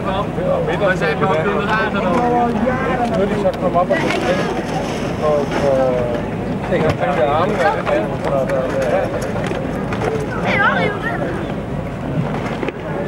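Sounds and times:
people talking: 0:00.0 - 0:11.8.

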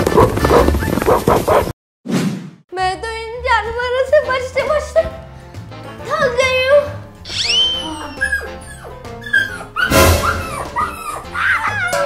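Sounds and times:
background music: 0:02.7 - 0:12.0
dog yipping and barking: 0:07.3 - 0:12.0.

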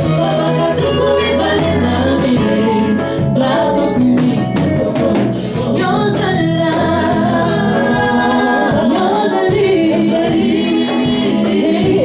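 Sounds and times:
vocal group singing in harmony: 0:00.0 - 0:12.0.

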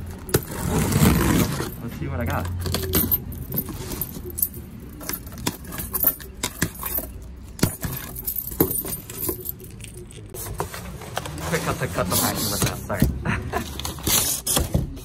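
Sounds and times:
keys jangling: 0:02.4 - 0:10.3.

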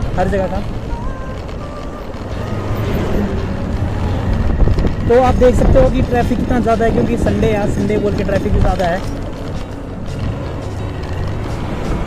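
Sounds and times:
motorcycle engine: 0:00.0 - 0:12.0
road noise: 0:00.0 - 0:12.0
wind rumble on microphone: 0:00.8 - 0:09.4.

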